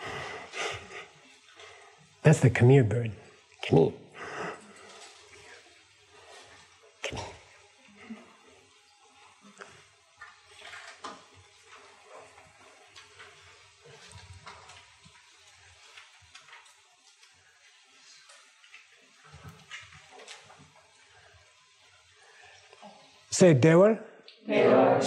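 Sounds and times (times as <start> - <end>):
faint steady hiss: 0.0 - 25.0.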